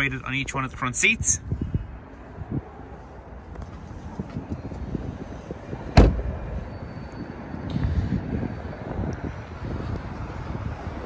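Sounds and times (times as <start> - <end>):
car door shutting thud: 5.9 - 6.4.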